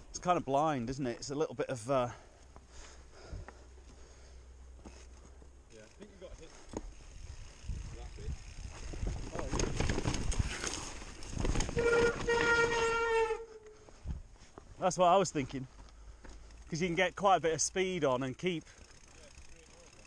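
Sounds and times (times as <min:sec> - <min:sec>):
bike tyres rattling on dirt: 0:00.0 - 0:20.0.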